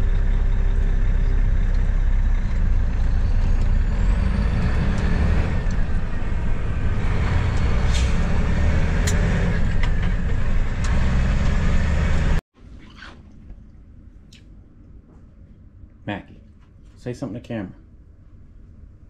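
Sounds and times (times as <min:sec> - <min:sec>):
road noise inside cab: 0:00.0 - 0:12.4
truck diesel engine running: 0:00.0 - 0:12.4.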